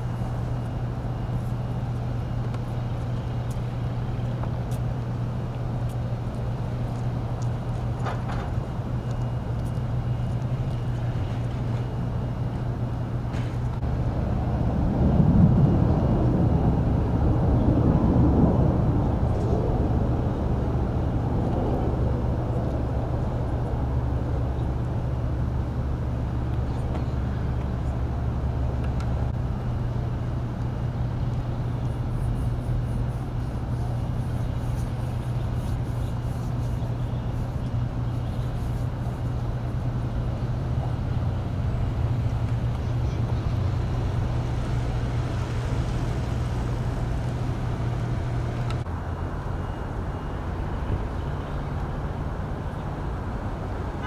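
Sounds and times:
street traffic hum: 0.0s - 54.0s
vehicle passing: 38.5s - 54.0s.

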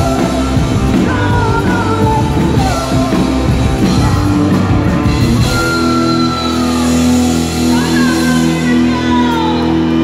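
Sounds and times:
distorted electric guitars and bass ringing: 0.0s - 10.0s.

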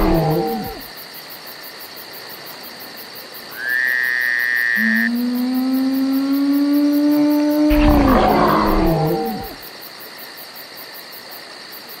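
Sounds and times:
rough roar with deep rumble: 0.0s - 0.8s, 5.2s - 9.6s.

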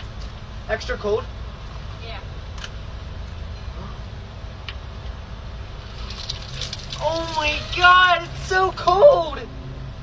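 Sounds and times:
car engine idling: 4.5s - 10.0s
iced drink pouring: 5.8s - 8.4s.

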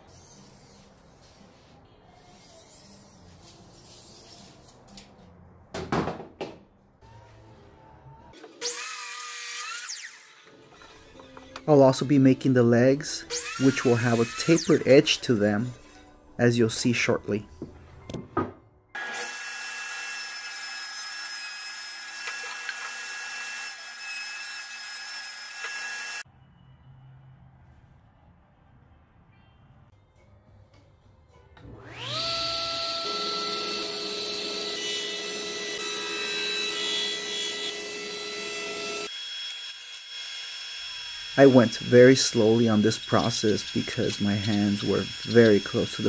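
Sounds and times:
power saw running: 31.6s - 46.0s
table saw motor whine: 31.6s - 46.0s.

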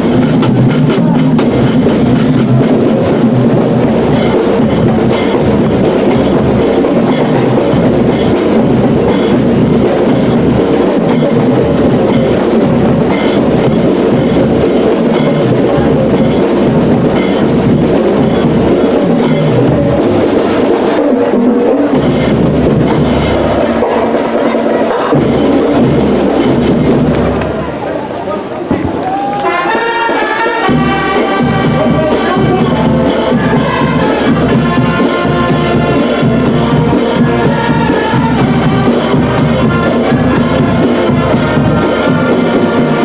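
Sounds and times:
marching brass band playing: 0.0s - 43.0s.

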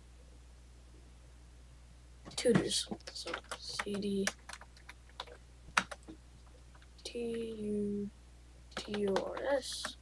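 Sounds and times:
computer keyboard keystrokes: 2.3s - 7.6s, 8.8s - 10.0s.

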